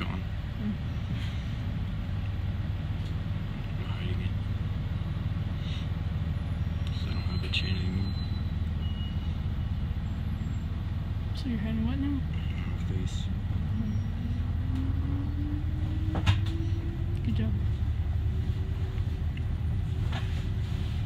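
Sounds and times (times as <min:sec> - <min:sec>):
bus engine hum: 0:00.0 - 0:21.0.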